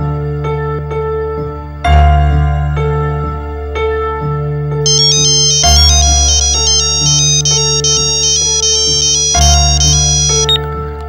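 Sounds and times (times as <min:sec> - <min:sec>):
phone ringtone melody: 0:04.9 - 0:10.6.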